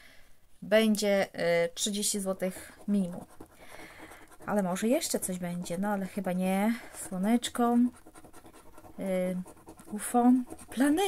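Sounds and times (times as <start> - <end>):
coin scraping scratch card: 2.8 - 11.0.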